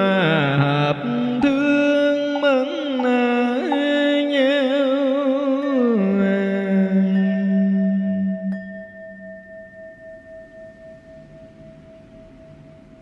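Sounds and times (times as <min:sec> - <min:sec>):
chanting held note: 0:00.0 - 0:08.7
bowl bell ringing: 0:01.4 - 0:13.0.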